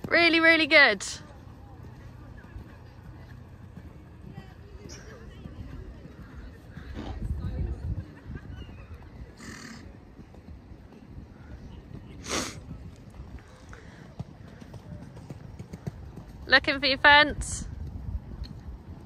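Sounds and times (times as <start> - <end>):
hooves thudding on sand: 0.0 - 19.0
horse snorts: 9.4 - 10.0.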